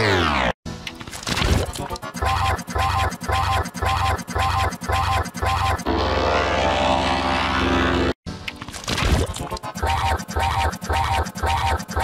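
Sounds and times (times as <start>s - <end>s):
buzzing synthetic drone: 2.2s - 8.2s, 9.6s - 12.0s.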